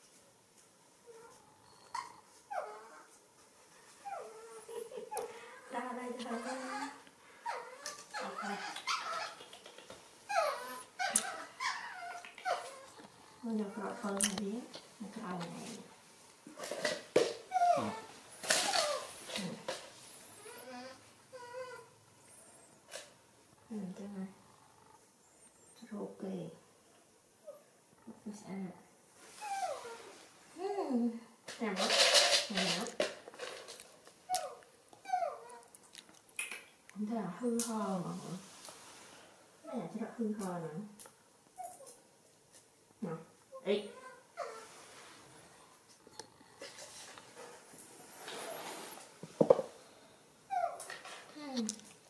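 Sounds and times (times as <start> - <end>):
baby monkey whimpering: 6.3 - 9.5, 10.3 - 13.0, 17.5 - 19.1, 34.3 - 35.7.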